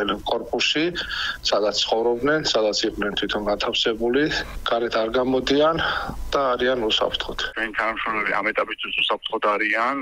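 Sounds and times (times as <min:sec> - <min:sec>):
man speaking over telephone: 0:00.0 - 0:10.0.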